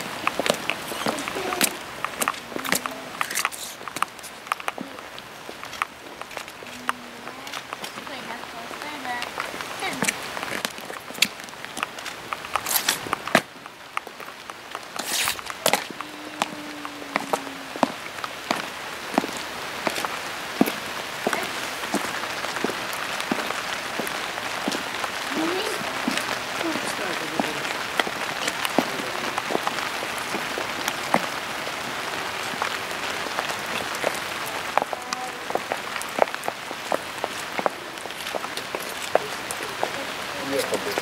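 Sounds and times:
rain on stone paving: 0.0s - 41.0s.

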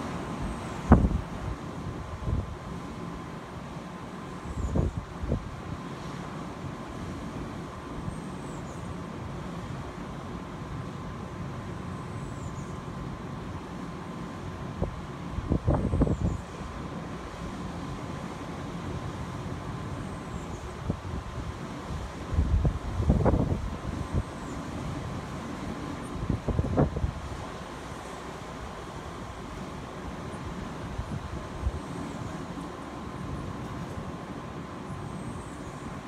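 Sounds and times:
wind buffeting microphone: 0.2s - 2.7s, 14.8s - 16.6s, 20.7s - 24.4s, 26.1s - 27.4s.

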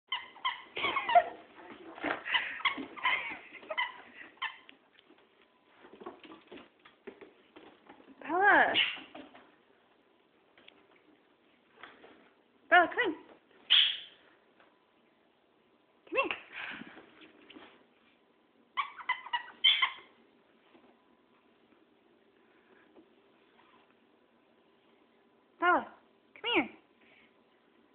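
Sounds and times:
dogs squeaking and yipping: 0.1s - 1.4s, 2.2s - 4.7s, 13.7s - 14.2s, 18.8s - 20.1s
small dog whining: 18.8s - 20.1s.

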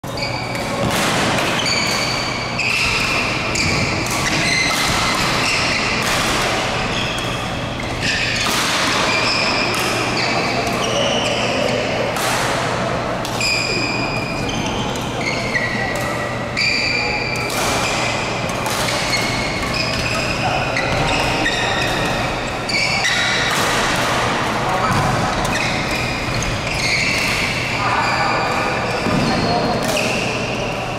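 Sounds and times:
sports shoes squeaking: 0.0s - 12.1s, 13.3s - 30.9s
racket hitting shuttlecock: 0.5s - 11.4s, 12.1s - 13.6s, 17.3s - 27.8s, 28.5s - 30.6s.

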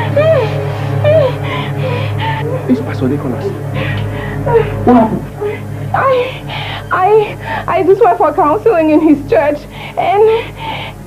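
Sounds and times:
woman wailing: 0.0s - 7.4s.

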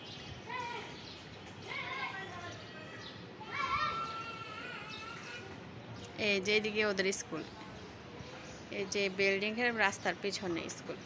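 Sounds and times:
faint outdoor background noise: 0.0s - 11.0s
distant children calling out: 0.3s - 5.7s.

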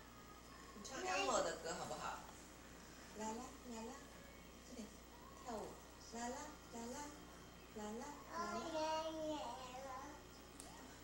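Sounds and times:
toddler singing: 8.3s - 10.2s.

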